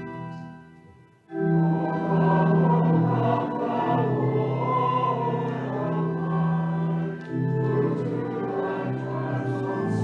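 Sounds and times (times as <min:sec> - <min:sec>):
pipe organ accompaniment: 0:00.0 - 0:10.0
voices singing a hymn: 0:01.3 - 0:10.0.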